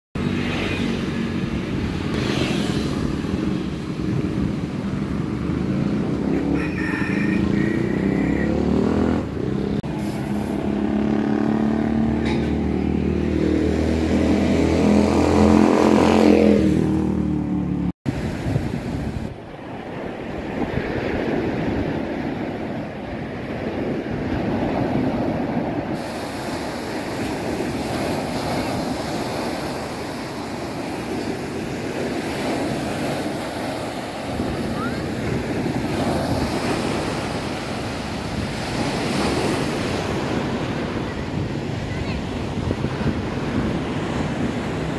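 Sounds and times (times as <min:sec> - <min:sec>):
vehicle engine revving: 0:07.4 - 0:17.9
steady rushing noise: 0:09.1 - 0:44.9.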